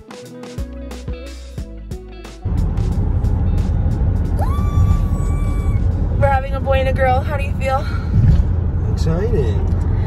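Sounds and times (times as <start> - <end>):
high rising note: 2.4 - 6.4
car cabin road rumble: 2.4 - 10.0.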